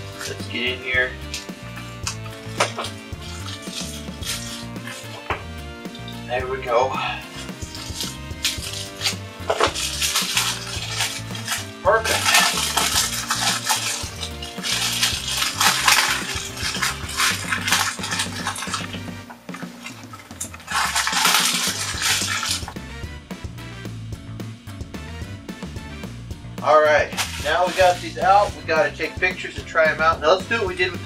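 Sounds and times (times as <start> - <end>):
background music: 0.0 - 31.0
plastic packaging crinkling: 1.3 - 5.4, 7.3 - 22.8.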